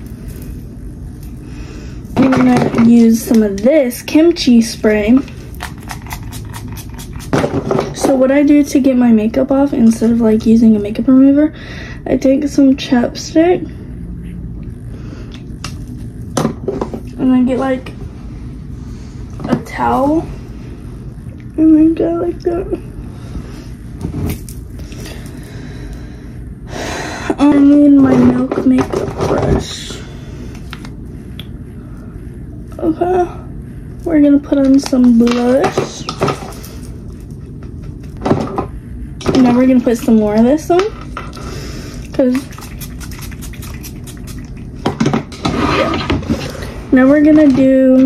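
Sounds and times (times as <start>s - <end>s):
steady low hum: 0.0s - 48.0s
spray bottle misting: 42.2s - 44.6s.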